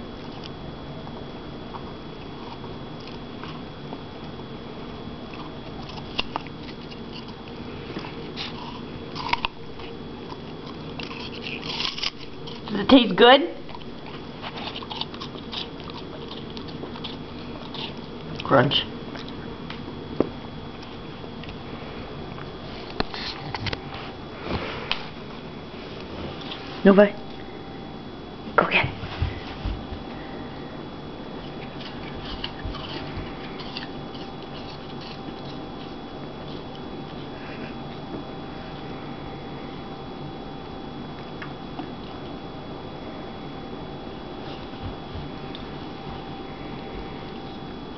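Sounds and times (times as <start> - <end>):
puppy crunching apple: 1.6 - 27.5, 31.2 - 38.2.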